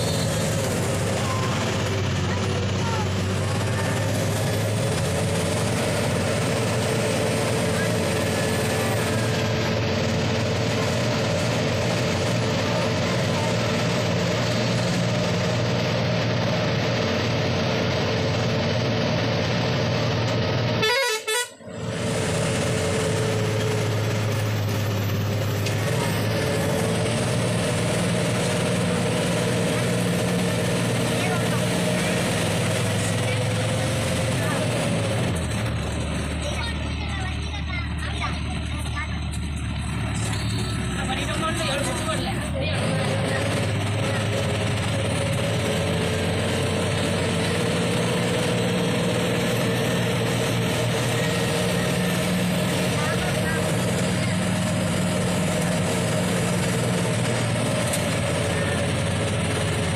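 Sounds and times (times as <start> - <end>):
bus engine and road noise: 0.0 - 59.9.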